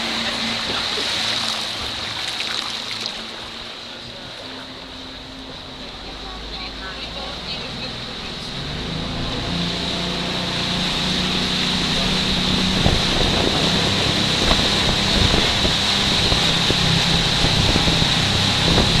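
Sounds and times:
motorboat engine running: 0.0 - 19.0
wind buffeting microphone: 10.8 - 19.0.

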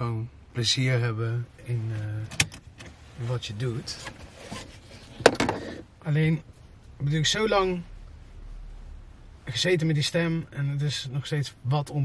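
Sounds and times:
faint rustling of movement: 0.6 - 11.4.

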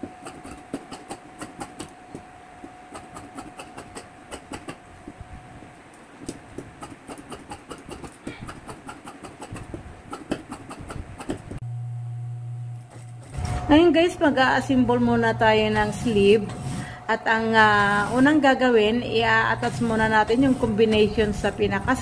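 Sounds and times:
sewing machine motor hum: 19.2 - 22.0.

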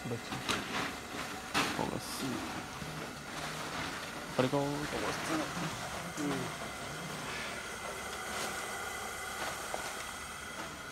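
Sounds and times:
gas burner hissing: 0.0 - 10.9.

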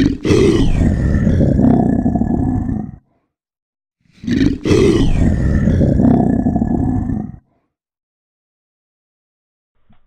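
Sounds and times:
deep rough creature roar: 0.0 - 3.2, 4.2 - 7.7.

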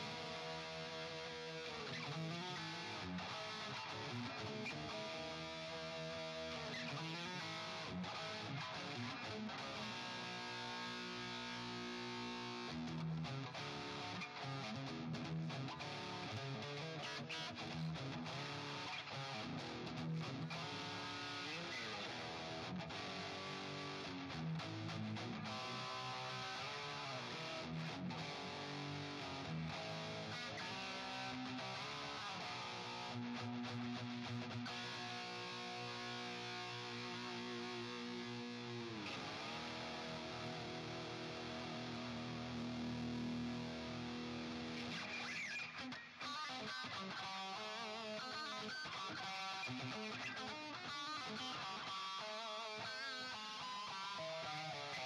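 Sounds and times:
electric guitar lead notes: 0.0 - 55.0.

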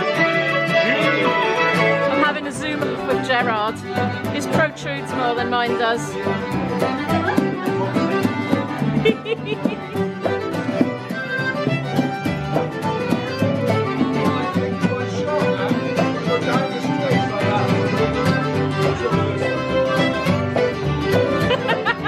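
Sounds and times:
fiddle playing folk tune: 0.0 - 22.0
strummed acoustic guitar: 0.0 - 22.0.

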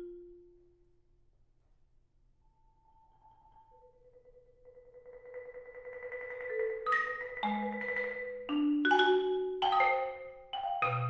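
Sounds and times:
marimba mallet roll: 3.2 - 11.0.

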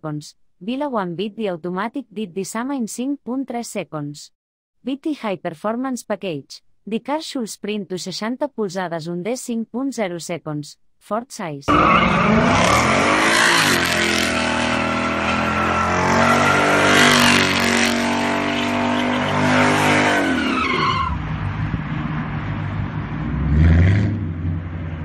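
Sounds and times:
tyres spinning and squealing: 11.7 - 21.3
car engine revving: 11.7 - 25.0.

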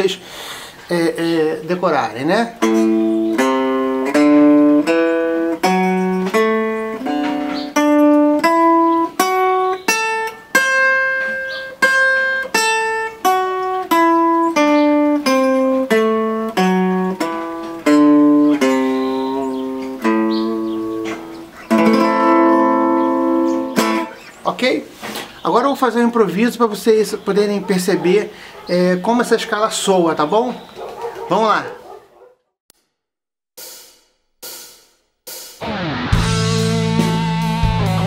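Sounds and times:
clean electric guitar picking notes: 2.6 - 24.2, 35.6 - 38.0.

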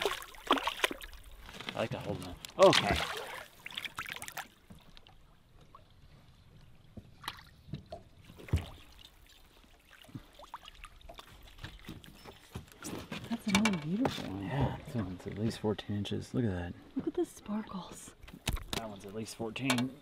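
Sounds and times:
small water splashes: 0.0 - 13.3.

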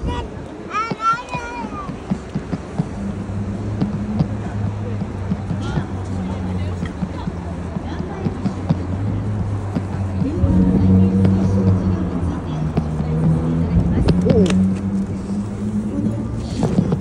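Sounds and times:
voices: 0.0 - 17.0
steady low drone: 8.7 - 17.0.

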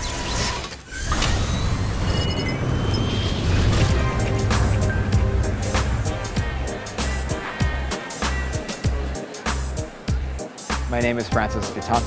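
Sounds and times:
car engine rumbling: 2.8 - 9.8.

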